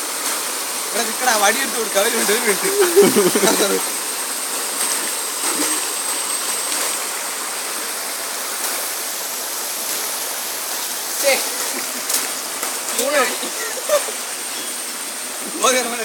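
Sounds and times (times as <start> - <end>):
rushing river water: 0.0 - 16.0
person's voice: 1.0 - 3.9.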